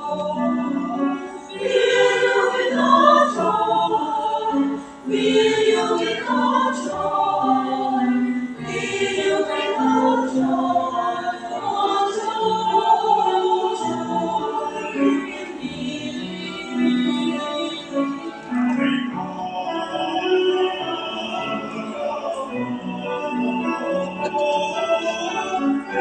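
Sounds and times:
choir singing in harmony: 0.0 - 26.0.

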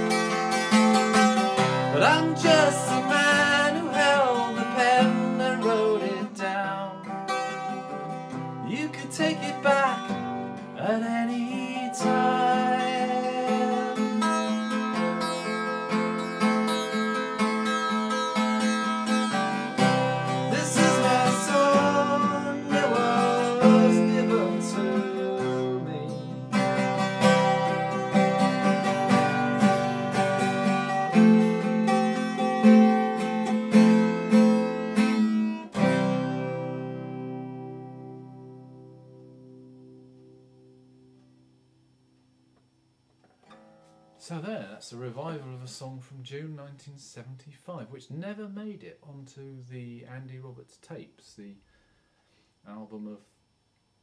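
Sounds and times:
acoustic guitar strumming chords: 0.0 - 46.4.

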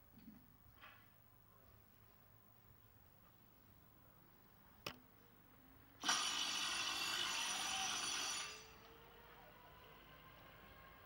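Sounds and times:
electric bell ringing: 6.1 - 8.8.

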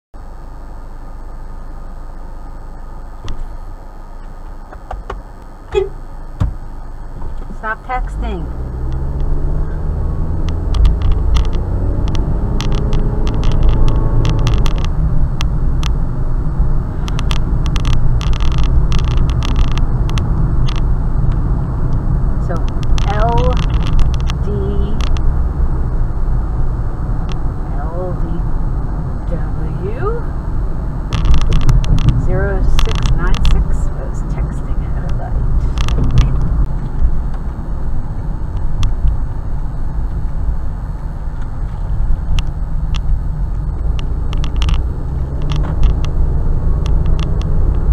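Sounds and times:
car engine and road rumble: 0.2 - 47.9.

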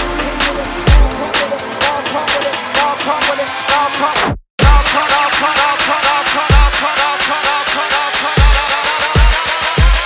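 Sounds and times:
heavy kick and bass: 0.0 - 10.0.

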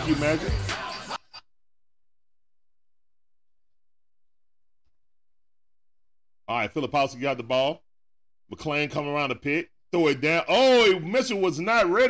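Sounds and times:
music: 0.0 - 1.3
speech: 6.5 - 7.8, 8.5 - 12.0.

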